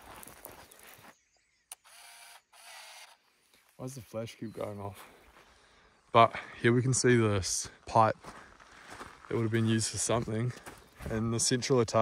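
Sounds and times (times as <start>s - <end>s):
camera film winding motor whirring: 1.7s - 3.2s.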